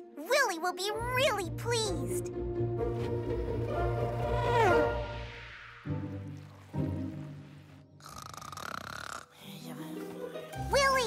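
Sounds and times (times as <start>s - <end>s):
cartoon character snoring: 8.0s - 9.4s.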